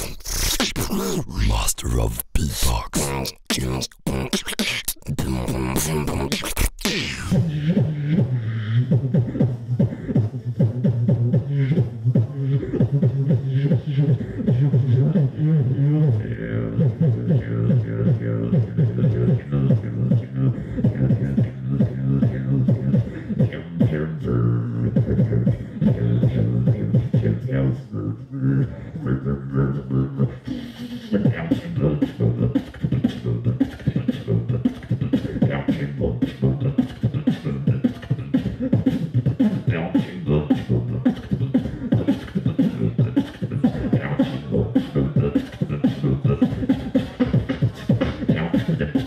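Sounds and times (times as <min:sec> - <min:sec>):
person beatboxing: 0:00.0 - 0:49.0.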